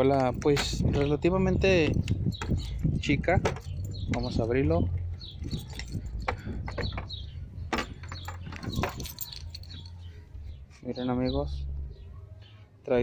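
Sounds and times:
keys jangling on a key ring: 5.4 - 7.2, 7.8 - 10.1.

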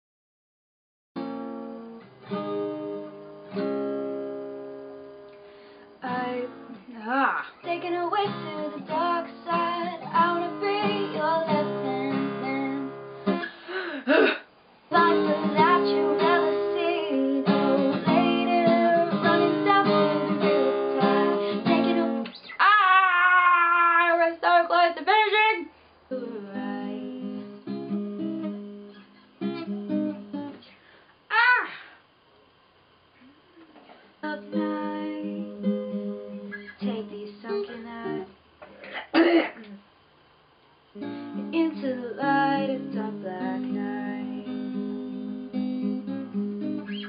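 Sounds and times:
strummed acoustic guitar: 1.2 - 6.9, 7.6 - 14.3, 14.9 - 22.5, 26.2 - 30.6, 33.7 - 39.6, 41.0 - 47.0
woman singing: 6.0 - 13.0, 14.9 - 27.6, 34.2 - 35.8, 36.6 - 38.3, 41.3 - 44.8.

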